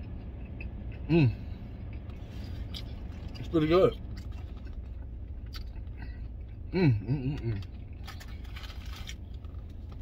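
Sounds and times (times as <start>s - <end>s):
vehicle cab hum: 0.0s - 10.0s
rustles and clicks handling food: 1.9s - 6.2s, 7.5s - 10.0s.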